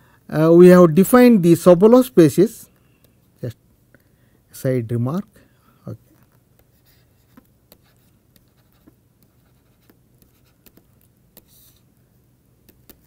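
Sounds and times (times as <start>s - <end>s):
stylus scratching on tablet: 6.2s - 11.9s, 12.6s - 13.0s.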